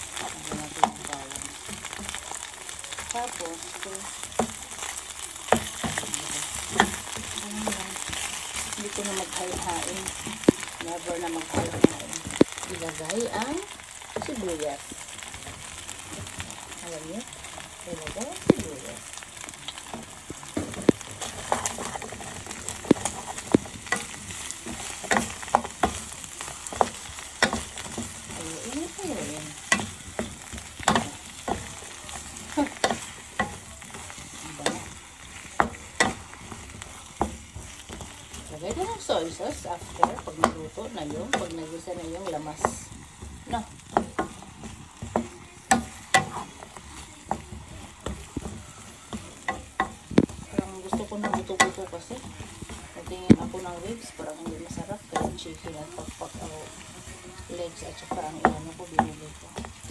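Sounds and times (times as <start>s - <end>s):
food sizzling in oil: 0.0s - 59.9s
wooden spatula knocking and scraping: 0.0s - 59.9s.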